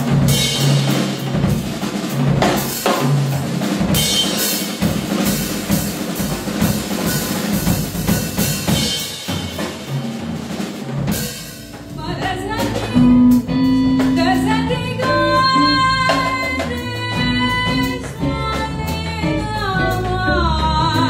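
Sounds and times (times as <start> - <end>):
drum kit playing: 0.0 - 21.0
held bass note: 11.7 - 16.4
person singing: 12.0 - 21.0.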